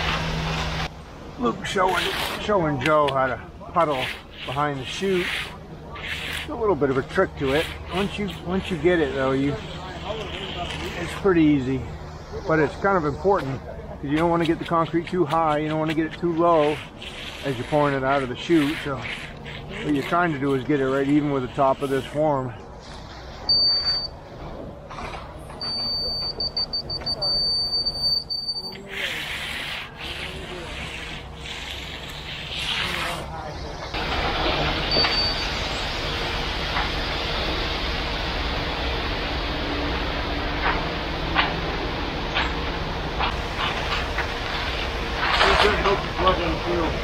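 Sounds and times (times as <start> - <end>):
concrete raking and scraping: 0.0 - 24.1, 24.9 - 36.1, 40.6 - 47.0
concrete truck running: 0.0 - 47.0
wet concrete pouring: 1.5 - 11.8, 14.1 - 22.2, 28.6 - 39.4, 43.2 - 47.0
high steady electronic tone: 23.4 - 24.2, 25.6 - 28.8, 34.9 - 35.9.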